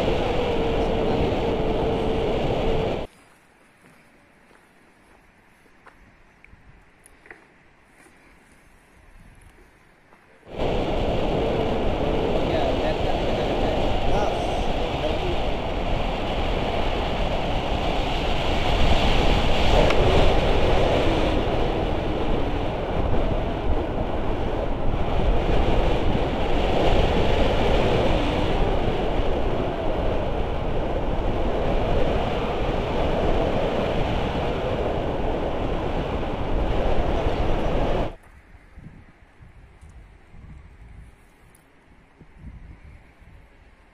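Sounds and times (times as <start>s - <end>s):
wind buffeting microphone: 0.0s - 3.1s, 10.5s - 43.9s.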